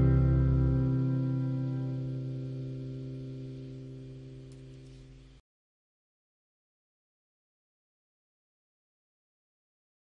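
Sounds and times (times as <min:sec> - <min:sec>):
guitar chord ringing out: 0:00.0 - 0:04.9.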